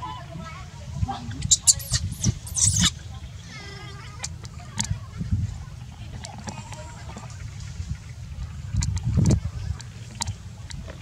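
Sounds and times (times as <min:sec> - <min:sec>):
baby monkey screaming: 0:01.3 - 0:03.0.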